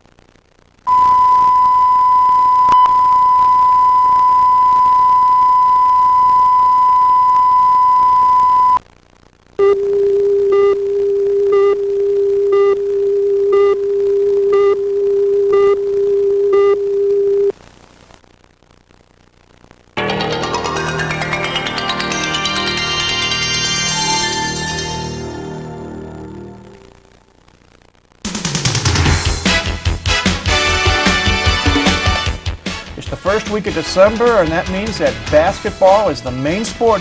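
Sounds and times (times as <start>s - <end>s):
short beeps: 0.9s - 8.8s
high test tone: 20.0s - 26.9s.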